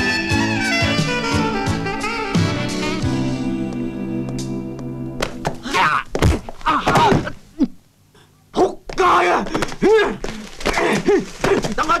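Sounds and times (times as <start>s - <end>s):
held music chord: 0.0s - 5.4s
thuds of blows: 5.2s - 7.4s
man groaning in pain: 5.6s - 7.8s.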